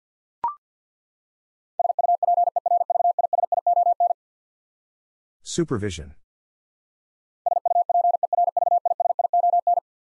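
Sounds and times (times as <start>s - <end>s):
morse code tone beeping: 1.8s - 4.2s, 7.5s - 9.8s.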